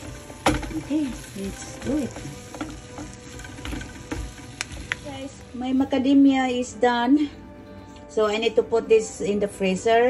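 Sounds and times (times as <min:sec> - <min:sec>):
utensil scraping nuts in pan: 0:00.0 - 0:05.4.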